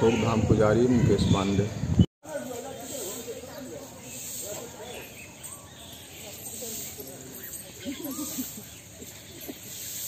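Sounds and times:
distant people talking: 2.2s - 9.9s.

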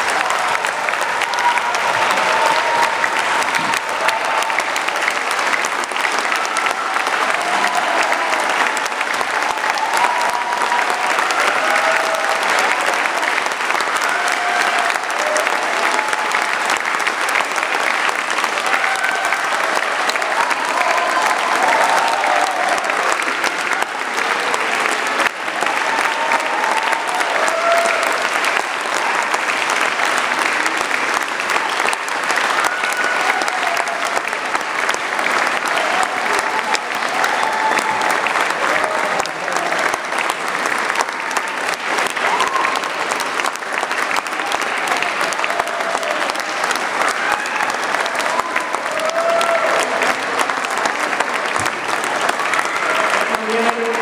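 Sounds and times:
audience applauding: 0.0s - 54.0s
scattered crowd voices: 0.0s - 54.0s.

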